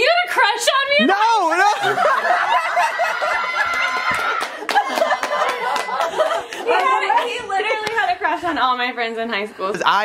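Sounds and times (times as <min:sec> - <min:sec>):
group of people laughing: 0:01.6 - 0:07.5.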